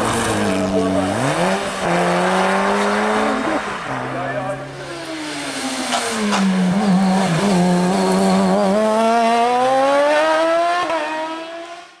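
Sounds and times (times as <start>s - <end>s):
race car engine accelerating: 0.0s - 12.0s.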